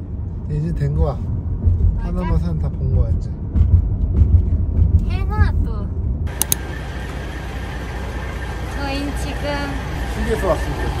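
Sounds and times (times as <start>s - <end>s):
vehicle engines rumbling: 0.0s - 11.0s
sharp clicks: 6.3s - 6.6s.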